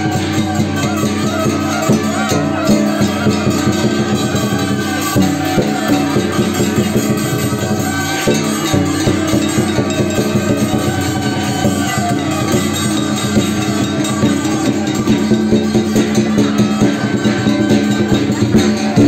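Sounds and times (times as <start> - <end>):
cymbals crashing: 0.0 - 19.0
drum beating: 0.0 - 19.0
gongs ringing: 0.0 - 19.0.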